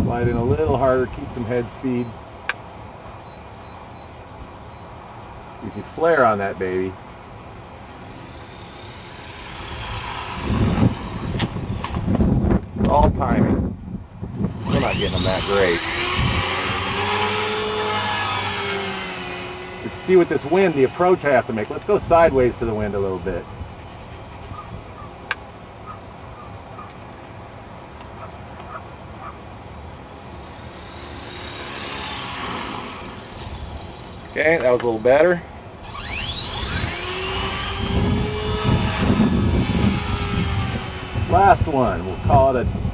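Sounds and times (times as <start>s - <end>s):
wind noise on microphone: 0.0s - 1.8s, 9.4s - 19.1s, 35.8s - 42.9s
helicopter rotor blades whooshing: 0.0s - 2.8s, 7.8s - 13.2s, 14.4s - 26.0s, 29.2s - 35.2s, 35.8s - 42.9s
high whine falling in pitch: 0.0s - 4.9s, 14.4s - 26.0s, 35.8s - 42.9s
low rumbling buffeting: 0.0s - 42.9s.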